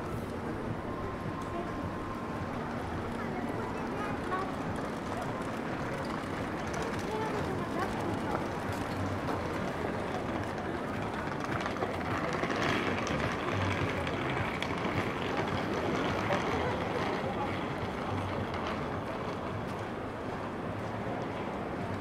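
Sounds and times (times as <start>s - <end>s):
city hum: 0.0s - 22.0s
murmur of passers-by talking: 0.0s - 22.0s.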